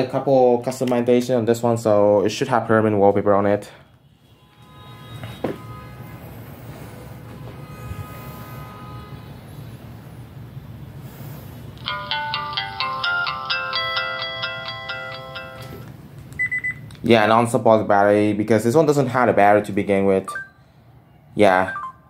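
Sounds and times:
held electronic tones: 0:21.6 - 0:22.0.

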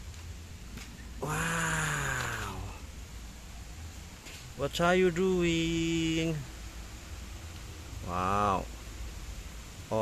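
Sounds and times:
low steady background rumble: 0:00.0 - 0:10.0
man's drawn-out vocal sound: 0:01.2 - 0:02.8.

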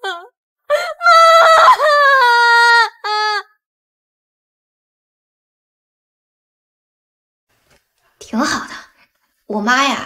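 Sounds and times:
woman wailing in tears: 0:00.0 - 0:03.6.

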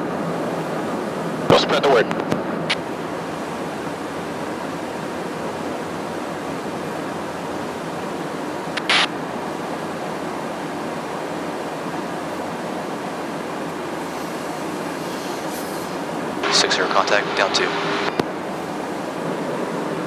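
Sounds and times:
airflow and engine noise in flight: 0:00.0 - 0:20.0
loud crackle of hiss: 0:14.1 - 0:16.0.

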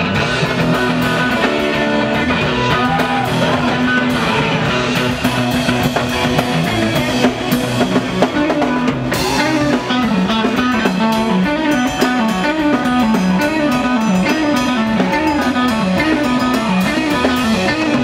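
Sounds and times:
bass guitar: 0:00.0 - 0:18.0
drum kit: 0:00.0 - 0:18.0
electric guitars: 0:00.0 - 0:18.0.

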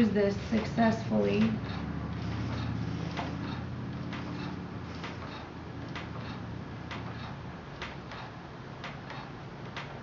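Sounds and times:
tools working wet clay: 0:00.4 - 0:07.4.

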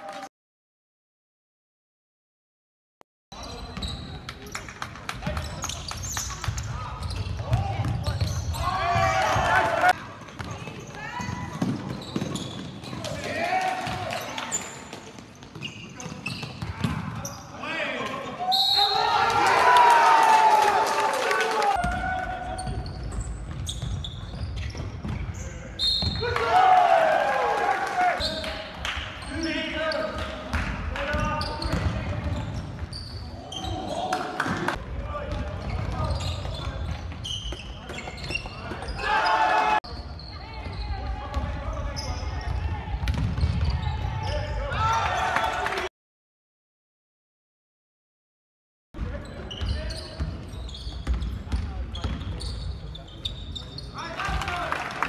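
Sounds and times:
basketball bouncing on court: 0:05.1 - 0:09.6, 0:10.2 - 0:13.2, 0:14.9 - 0:17.3, 0:21.8 - 0:26.4, 0:30.5 - 0:33.0, 0:35.3 - 0:38.9, 0:40.6 - 0:44.2, 0:49.0 - 0:52.5.

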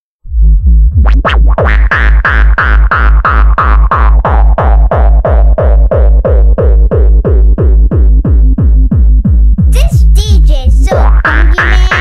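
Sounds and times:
distorted kick drum pounding: 0:00.6 - 0:12.0.

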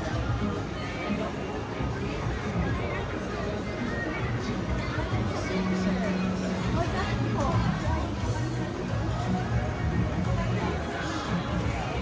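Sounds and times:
people talking: 0:00.0 - 0:12.0
restaurant chatter: 0:00.0 - 0:12.0.

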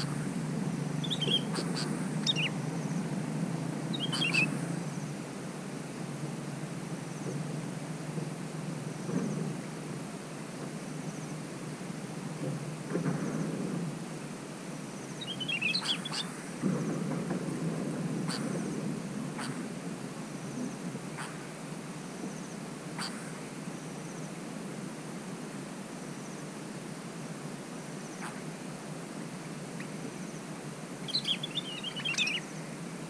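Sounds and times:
bulbuls chirping: 0:00.0 - 0:03.2, 0:03.8 - 0:05.1, 0:15.2 - 0:16.3, 0:31.0 - 0:32.7
low background noise: 0:00.0 - 0:33.0.

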